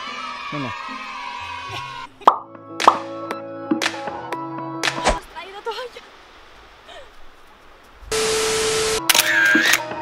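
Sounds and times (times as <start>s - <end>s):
background music: 0.0s - 5.4s, 8.5s - 10.0s
loud static with low hum: 8.1s - 9.0s.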